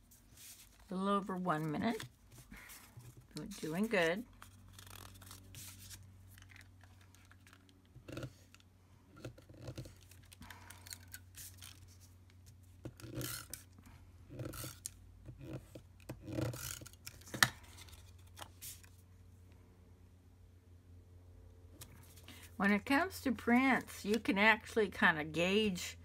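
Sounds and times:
cardstock rustling and scraping: 0:00.0 - 0:08.6, 0:09.2 - 0:13.6, 0:14.3 - 0:19.0
low steady hum: 0:00.0 - 0:26.0.

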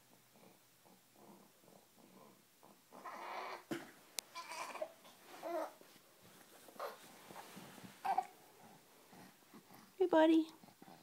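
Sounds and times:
baby fussing cry: 0:04.3 - 0:05.8, 0:08.0 - 0:08.4.

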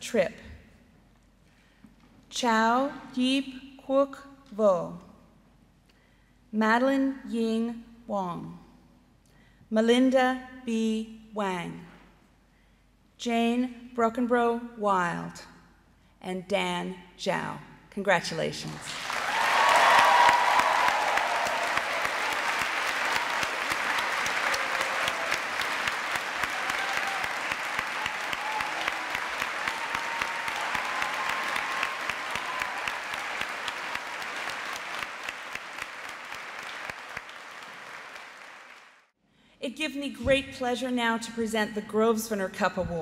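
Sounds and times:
large audience applauding: 0:18.8 - 0:39.1.

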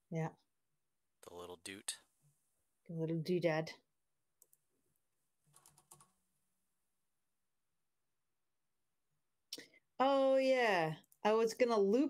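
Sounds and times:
faint keyboard keystrokes: 0:05.5 - 0:06.1.

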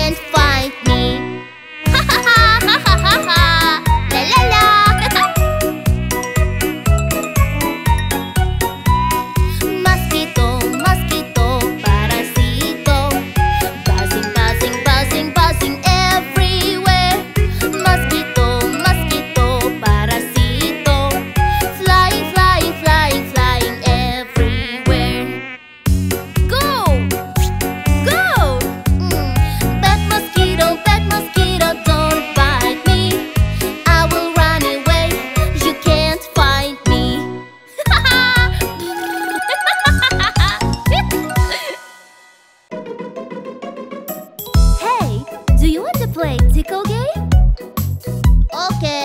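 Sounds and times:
mosquito buzzing: 0:00.0 - 0:42.2
children's song with steady beat: 0:09.7 - 0:24.2, 0:29.1 - 0:33.2, 0:33.8 - 0:37.3.

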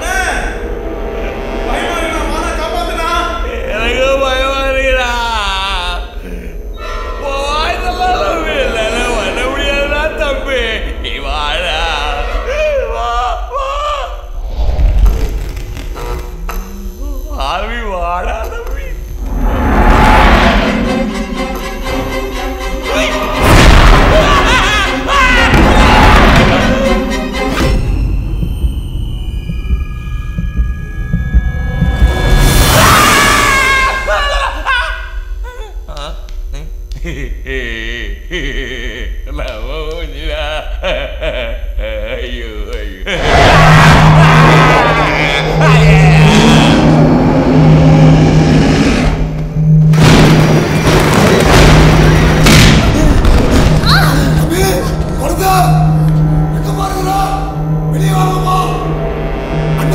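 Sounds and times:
horror film music: 0:00.0 - 0:18.4, 0:19.0 - 0:35.6, 0:43.1 - 0:59.9
pulsing low drone: 0:19.0 - 0:32.8, 0:43.1 - 0:59.9
loud boom: 0:23.4 - 0:28.8, 0:43.2 - 0:56.0
man crying out in fright: 0:24.0 - 0:26.9, 0:43.1 - 0:47.1.

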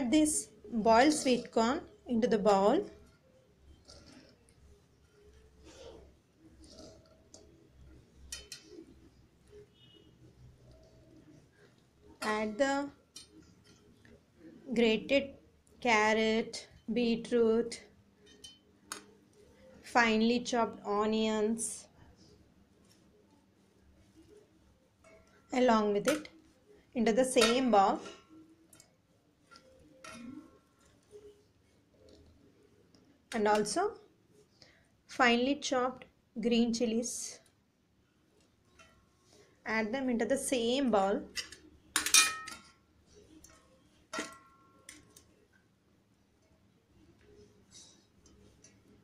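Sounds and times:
faint handling sounds: 0:21.9 - 0:25.6.

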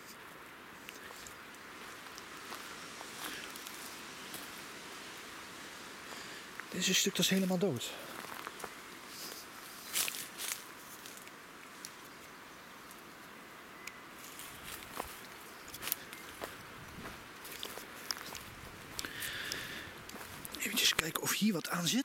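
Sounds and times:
leaves and twigs crackling: 0:00.0 - 0:22.0
steady low hiss: 0:00.0 - 0:22.0
footsteps on forest path: 0:00.8 - 0:04.7, 0:06.1 - 0:11.3, 0:14.2 - 0:22.0.

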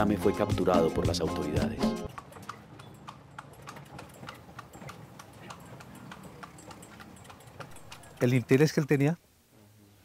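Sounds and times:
faint irregular clicks and taps: 0:02.1 - 0:08.3.

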